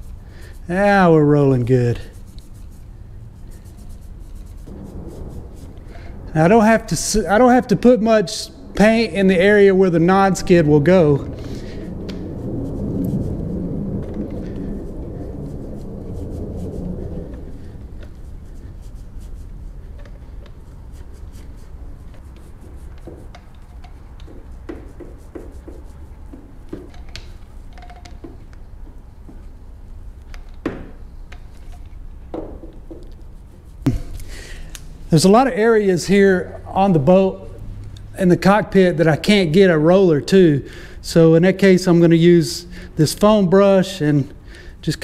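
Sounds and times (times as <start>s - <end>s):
paint roller rubbing: 0.0s - 28.5s, 32.8s - 34.2s.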